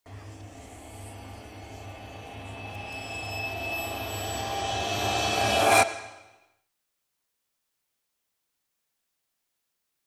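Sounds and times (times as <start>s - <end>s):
sharp hit: 3.9s - 6.4s.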